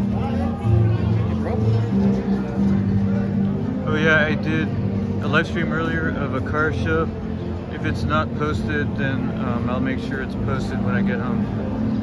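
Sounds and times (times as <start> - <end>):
man talking: 3.8 - 7.1, 7.7 - 11.7.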